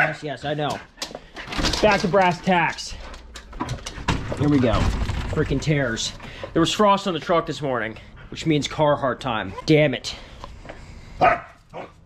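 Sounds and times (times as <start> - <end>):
dog barking: 0.0 - 0.2, 11.2 - 12.0.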